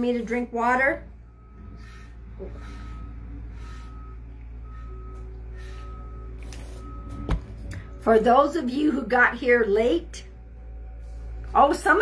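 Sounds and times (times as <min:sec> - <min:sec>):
reversing alarm beeping: 0:00.0 - 0:11.4
low steady rumble: 0:00.0 - 0:12.0.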